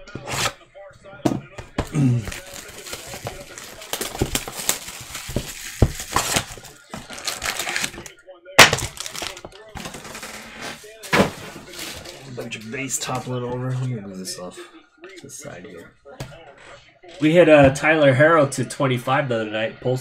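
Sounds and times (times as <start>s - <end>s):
plastic wrap crinkling and rustling: 1.8s - 13.2s.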